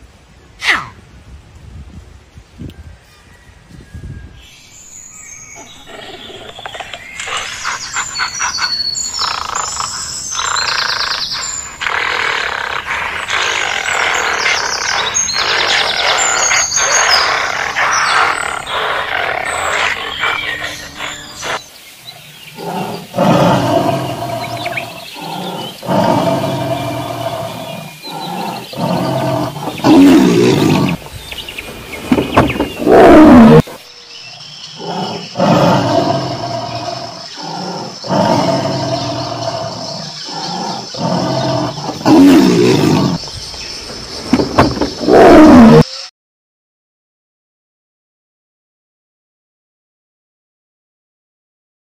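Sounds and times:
tiger roaring and growling: 0:05.8 - 0:21.6, 0:22.4 - 0:31.1, 0:32.0 - 0:33.8, 0:34.7 - 0:43.3, 0:44.0 - 0:45.9.

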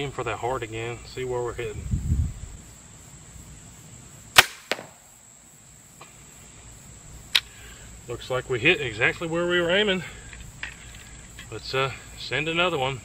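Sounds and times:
crossbow string crack: 0:04.4 - 0:05.1, 0:07.3 - 0:07.6.

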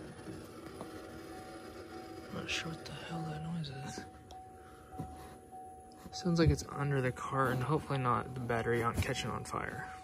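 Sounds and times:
faint steady high tone: 0:00.0 - 0:10.0.

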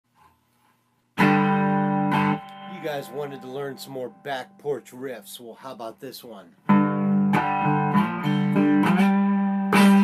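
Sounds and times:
guitar chord ringing: 0:01.2 - 0:05.5, 0:06.6 - 0:10.0.

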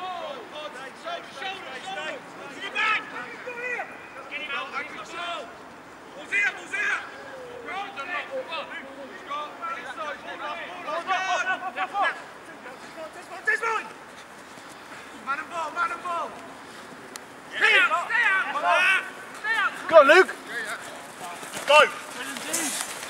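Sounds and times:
people shouting: 0:00.0 - 0:05.5, 0:06.1 - 0:12.4, 0:17.5 - 0:20.5
outdoor background hiss: 0:00.0 - 0:23.0.

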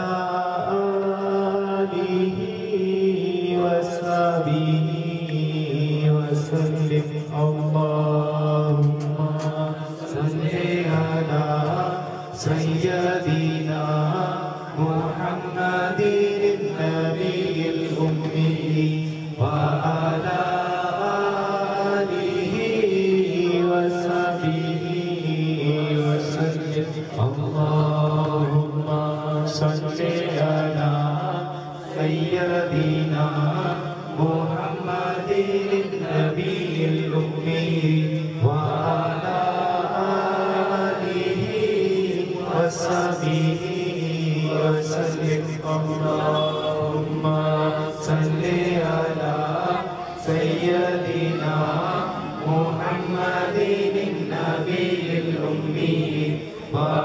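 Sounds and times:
men chanting: 0:00.0 - 0:57.0.

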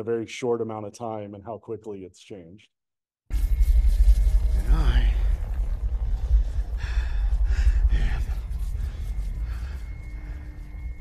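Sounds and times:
loud deep rumble: 0:03.3 - 0:11.0.

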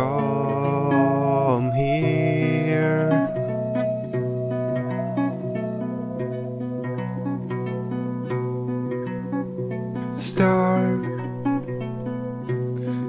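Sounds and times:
acoustic guitar picking: 0:00.0 - 0:13.0.

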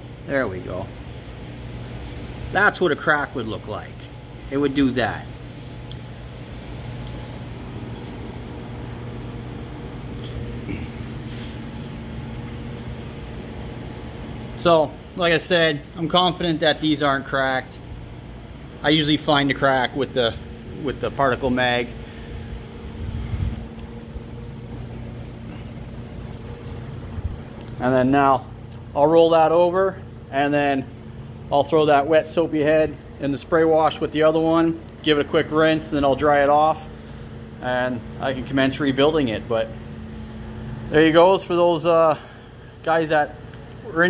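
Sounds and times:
low mechanical hum: 0:00.0 - 0:44.0.

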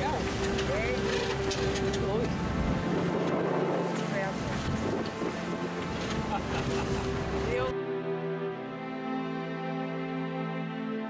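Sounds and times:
wind buffeting microphone: 0:00.0 - 0:07.6
sea noise: 0:00.0 - 0:09.4
music track: 0:00.0 - 0:11.0.

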